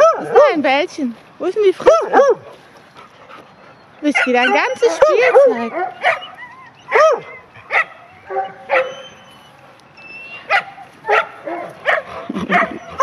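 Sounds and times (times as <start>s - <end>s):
dogs barking in play: 0.0s - 0.8s, 1.8s - 13.0s
dog whining: 3.7s - 10.8s, 12.3s - 13.0s.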